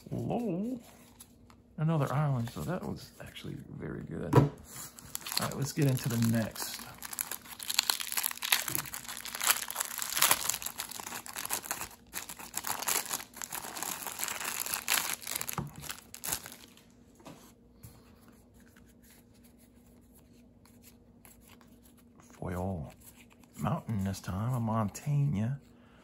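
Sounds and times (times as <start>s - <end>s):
plastic bag crinkling and tearing: 4.9s - 16.8s.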